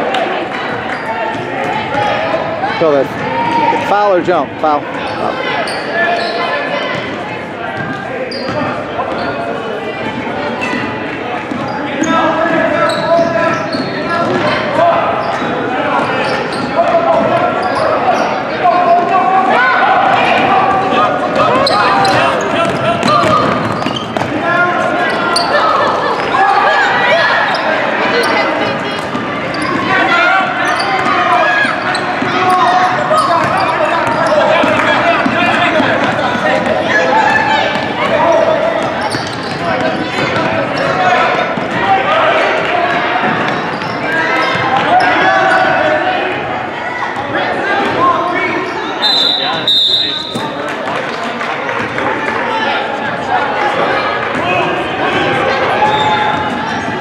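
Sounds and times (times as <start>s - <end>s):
spectators shouting: 11.9s - 50.7s.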